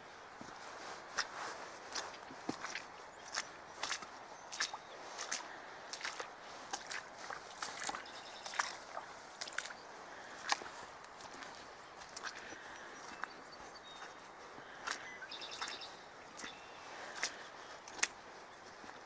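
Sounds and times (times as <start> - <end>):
footsteps on wet muddy grass: 0.0 - 19.0.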